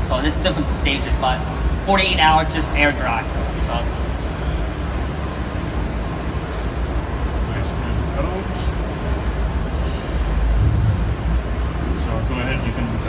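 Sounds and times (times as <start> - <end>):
exhibition hall rumble: 0.0 - 13.0.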